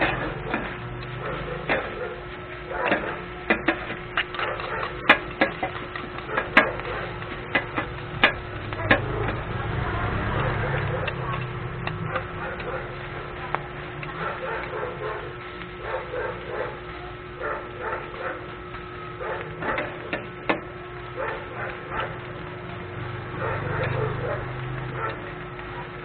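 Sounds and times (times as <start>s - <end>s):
spatulas scraping on griddle: 0.0s - 13.4s.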